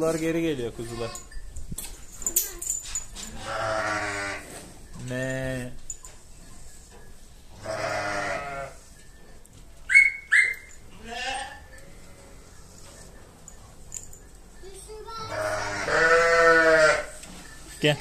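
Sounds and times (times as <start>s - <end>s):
sheep bleating: 3.4s - 4.5s, 7.6s - 8.8s, 11.0s - 12.2s, 15.3s - 17.2s
short high squeaks: 9.9s - 11.6s.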